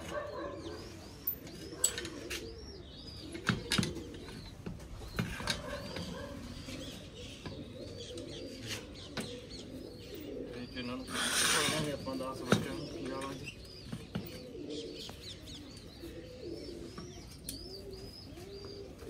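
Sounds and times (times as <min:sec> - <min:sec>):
pigeons cooing: 0:00.0 - 0:19.0.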